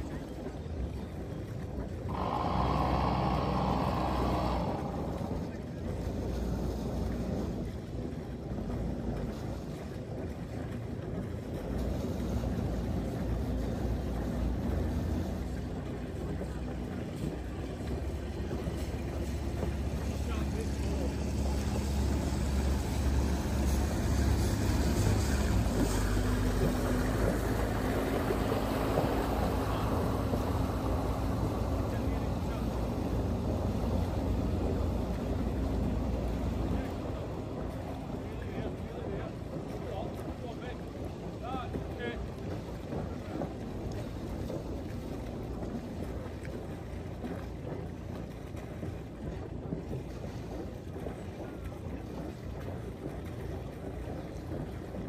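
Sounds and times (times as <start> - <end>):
boat engine drone: 0.0 - 55.0
boat wash on water: 0.0 - 55.0.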